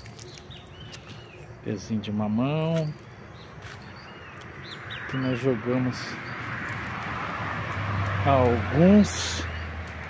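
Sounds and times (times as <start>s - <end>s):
birds chirping: 0.0s - 10.0s
faint outdoor background noise: 0.0s - 10.0s.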